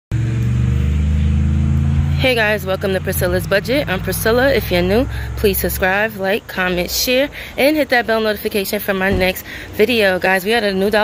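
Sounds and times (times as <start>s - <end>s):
vehicle engine idling: 0.1s - 11.0s.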